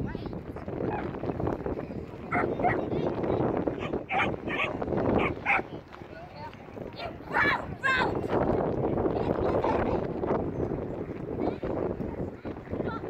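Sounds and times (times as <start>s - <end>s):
murmur of voices: 0.0s - 13.0s
wind: 0.0s - 13.0s
dog barking: 2.3s - 2.8s, 3.8s - 5.7s.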